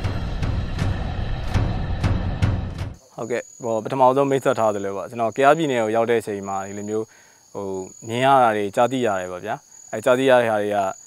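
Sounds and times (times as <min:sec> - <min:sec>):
high-pitched insect drone: 0:01.6 - 0:11.0
man speaking: 0:03.1 - 0:11.0.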